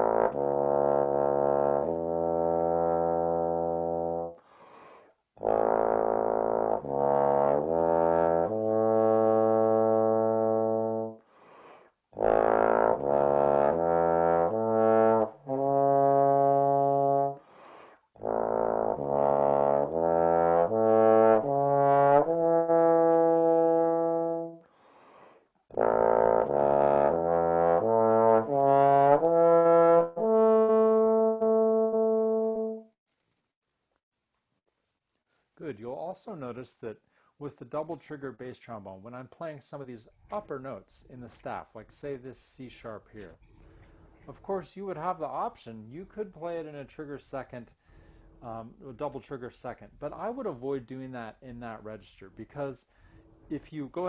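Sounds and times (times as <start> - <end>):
bass trombone playing: 0.0 - 4.4, 5.4 - 11.2, 12.1 - 17.4, 18.2 - 24.7, 25.7 - 33.0.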